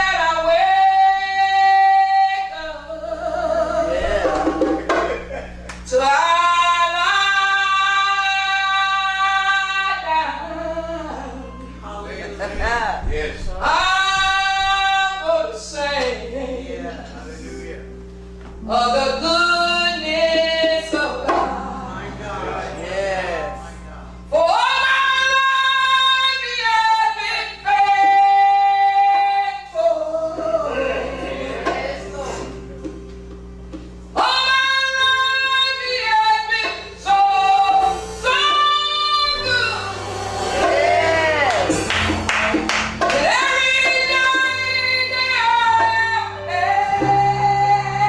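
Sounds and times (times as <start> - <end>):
woman singing gospel: 0.0 - 5.1, 5.8 - 17.6, 18.5 - 33.0, 34.1 - 48.0
sustained keyboard chords: 0.0 - 48.0.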